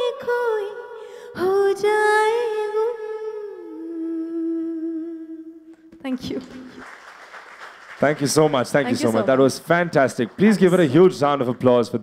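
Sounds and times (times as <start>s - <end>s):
audience applause: 6.4s - 12.0s.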